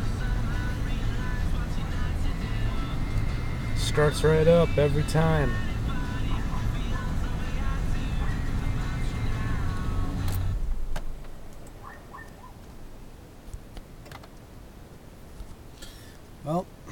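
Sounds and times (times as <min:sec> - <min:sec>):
music playing: 0:00.0 - 0:10.7
car engine idling: 0:00.0 - 0:12.9.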